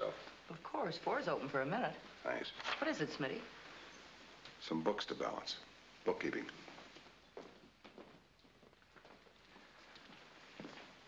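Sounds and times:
faint soundtrack hiss: 0:00.0 - 0:11.0.

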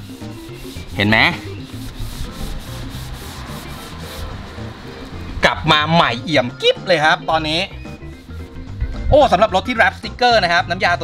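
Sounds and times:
towel wiping over vinyl wrap: 0:00.0 - 0:04.6.

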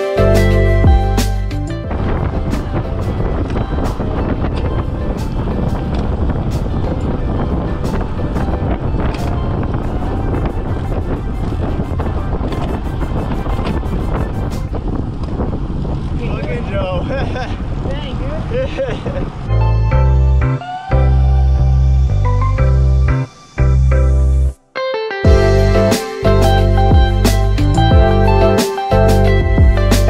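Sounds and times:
background music: 0:00.0 - 0:14.8, 0:19.5 - 0:30.0
wind buffeting microphone: 0:00.8 - 0:23.7.

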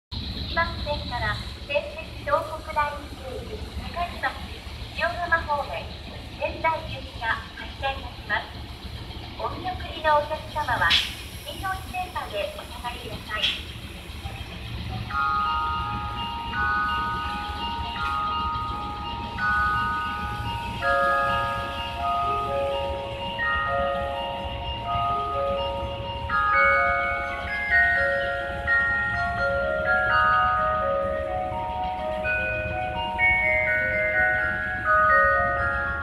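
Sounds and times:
chiming melody over loudspeakers: 0:15.1 - 0:36.0.

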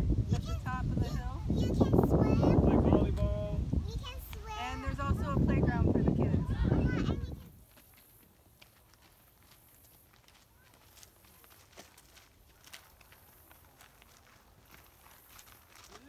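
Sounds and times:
footsteps on dry leaves: 0:07.6 - 0:16.0.

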